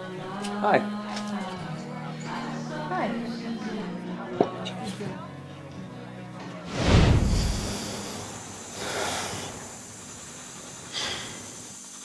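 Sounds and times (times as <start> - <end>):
loud rushing whoosh: 6.7 - 8.5
softer hissing rush: 6.7 - 12.0.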